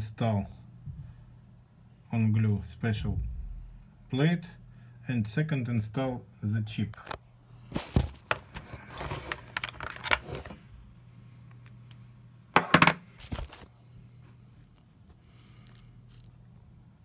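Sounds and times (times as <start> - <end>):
faint steady hum: 0.0 - 17.0
packing material rustling: 7.7 - 9.5, 13.2 - 13.8, 14.6 - 16.4.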